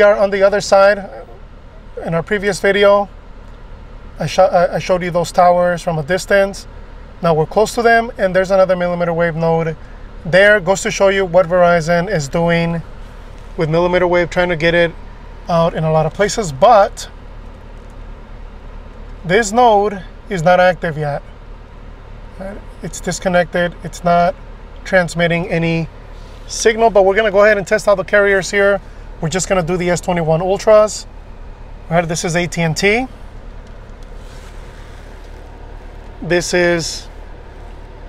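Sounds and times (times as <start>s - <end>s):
car engine hum inside cabin: 0.0s - 38.0s.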